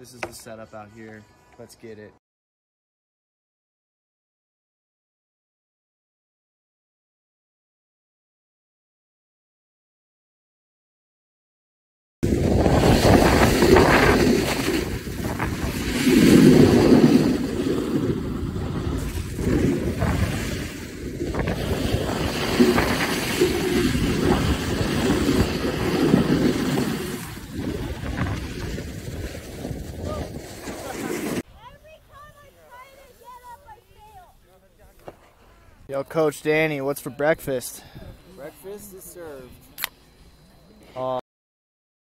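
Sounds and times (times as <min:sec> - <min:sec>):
snowboard scraping over snow: 0:12.2 - 0:31.4
wind buffeting microphone: 0:12.2 - 0:32.9.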